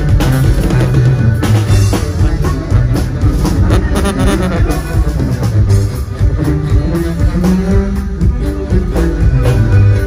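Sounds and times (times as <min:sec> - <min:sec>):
drum kit beat: 0:00.0 - 0:10.0
live band playing: 0:00.0 - 0:10.0.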